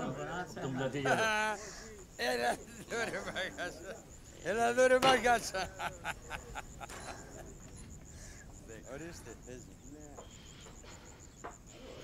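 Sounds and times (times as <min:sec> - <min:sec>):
faint distant voices: 0:00.0 - 0:12.0
insect chirping: 0:00.0 - 0:12.0.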